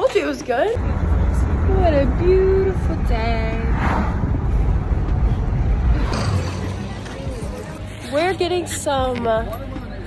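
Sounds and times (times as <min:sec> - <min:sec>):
low-pitched rumbling noise: 0:00.8 - 0:07.5.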